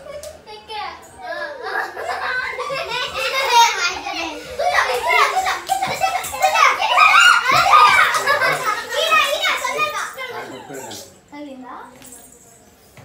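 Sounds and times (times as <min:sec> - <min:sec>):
children talking and calling out: 0:00.0 - 0:11.7.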